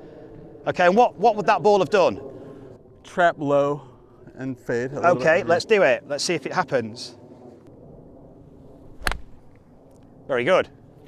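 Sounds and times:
golf club striking turf: 0:08.9 - 0:09.4.

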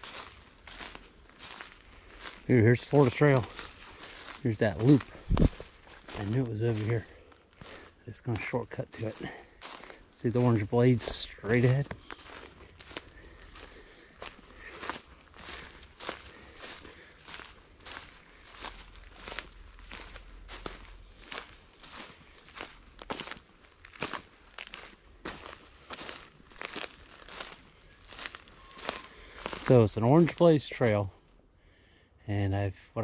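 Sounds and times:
footsteps on dry pine needles: 0:00.0 - 0:31.1.

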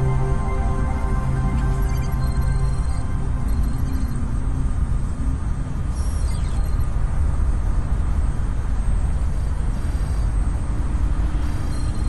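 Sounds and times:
held music notes: 0:00.0 - 0:04.0
deep city rumble: 0:00.0 - 0:12.0.

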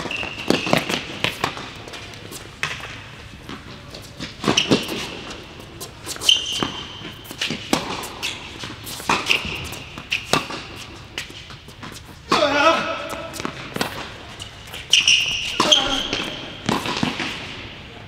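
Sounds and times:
sneaker squeaks: 0:00.0 - 0:17.7
tennis ball hits and bounces: 0:06.4 - 0:10.8, 0:14.9 - 0:17.6.

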